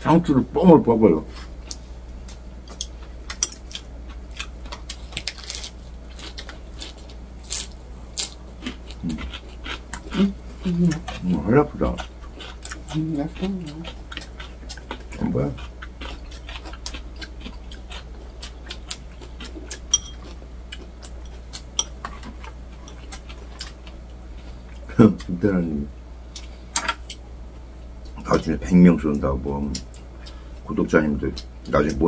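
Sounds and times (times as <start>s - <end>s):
man chewing with smacking sounds: 1.3s - 32.0s.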